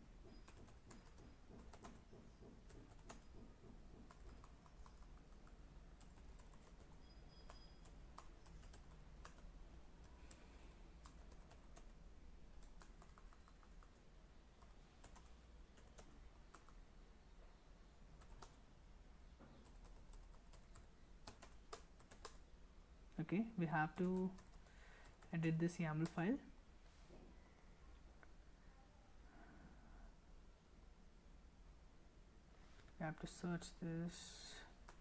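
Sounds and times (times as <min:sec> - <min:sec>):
keyboard typing clicks: 0:00.3 - 0:10.4, 0:12.6 - 0:14.0, 0:19.6 - 0:22.4
low steady hum: 0:04.0 - 0:35.0.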